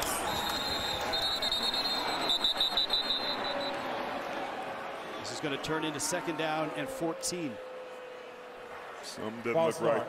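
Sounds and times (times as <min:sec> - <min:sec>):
stadium crowd din: 0:00.0 - 0:10.0
referee whistles: 0:00.2 - 0:04.0.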